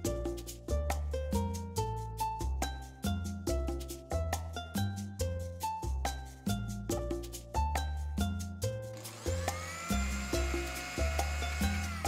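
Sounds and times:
music with plucked melody and bass: 0:00.0 - 0:12.0
mixer grinder motor whining: 0:09.0 - 0:12.0.

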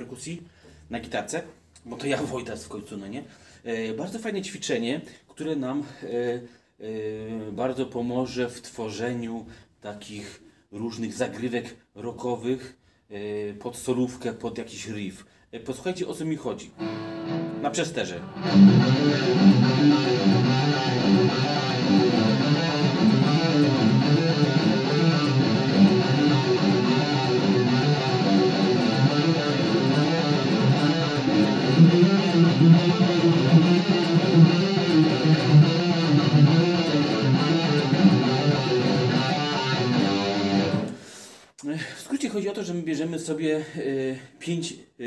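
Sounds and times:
distorted electric guitar rock lick: 0:16.8 - 0:41.0.

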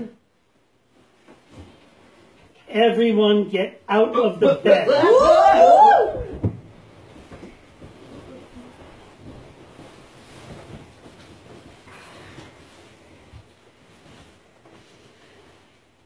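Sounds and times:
bedsheets rustling: 0:00.4 - 0:02.5, 0:04.4 - 0:16.0.

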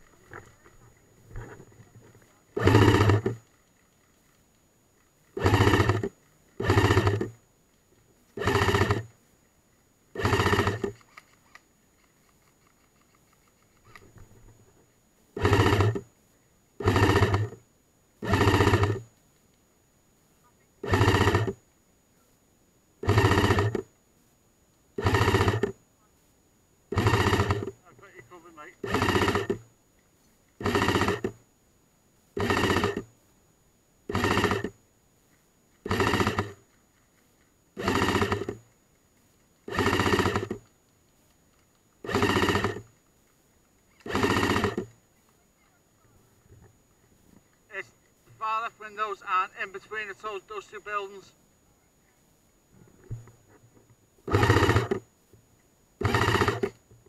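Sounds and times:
airsoft gun firing bursts: 0:02.6 - 0:03.5, 0:05.4 - 0:07.4, 0:08.4 - 0:09.1, 0:10.1 - 0:11.0, 0:15.4 - 0:16.1, 0:16.8 - 0:17.6, 0:18.2 - 0:19.0, 0:20.8 - 0:21.6, 0:23.0 - 0:23.8, 0:25.0 - 0:25.7, 0:26.9 - 0:27.8, 0:28.8 - 0:29.6, 0:30.6 - 0:31.4, 0:32.4 - 0:33.1, 0:34.1 - 0:34.8, 0:35.8 - 0:36.6, 0:37.8 - 0:38.6, 0:39.7 - 0:40.7, 0:42.0 - 0:42.9, 0:44.0 - 0:44.9, 0:54.3 - 0:55.0, 0:56.0 - 0:56.8.

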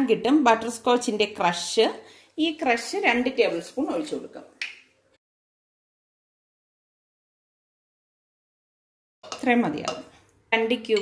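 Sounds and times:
woman talking: 0:00.0 - 0:04.6, 0:09.4 - 0:11.0.

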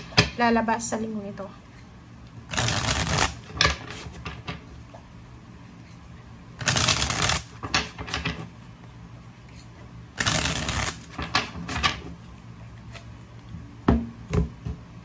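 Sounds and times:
cards flicking: 0:02.5 - 0:03.8, 0:06.6 - 0:07.6, 0:10.2 - 0:11.2
cards being shuffled: 0:02.5 - 0:04.4, 0:06.6 - 0:08.4, 0:09.5 - 0:12.0.

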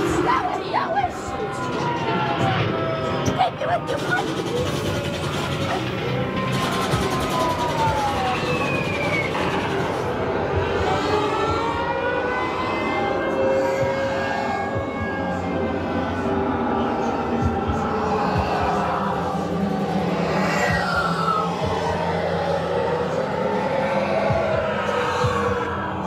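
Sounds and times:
wailing gliding tones: 0:00.0 - 0:26.0.

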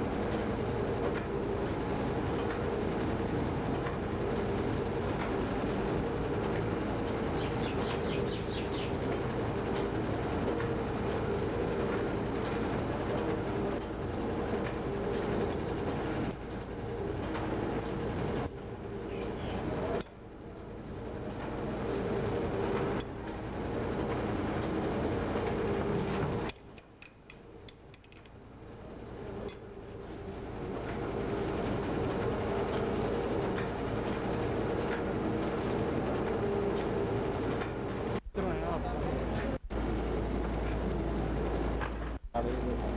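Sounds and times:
machine hum: 0:00.0 - 0:42.9.

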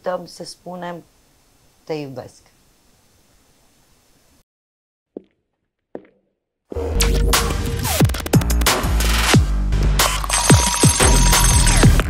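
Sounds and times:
electronic music with kick drums: 0:06.8 - 0:12.0
alarm bell ringing: 0:10.2 - 0:12.0.

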